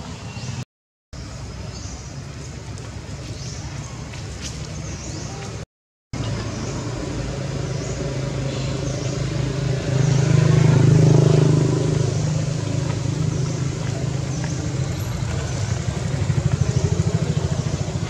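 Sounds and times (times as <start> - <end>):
motor engine running: 6.2 - 18.0.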